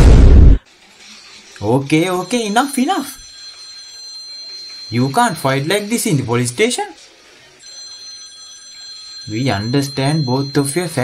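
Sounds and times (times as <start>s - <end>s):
high-pitched ringing tone: 1.9s - 7.0s, 7.6s - 11.0s.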